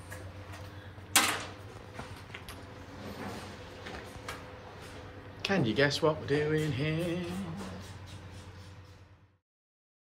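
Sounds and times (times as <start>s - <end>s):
low background hum: 0.0s - 9.4s.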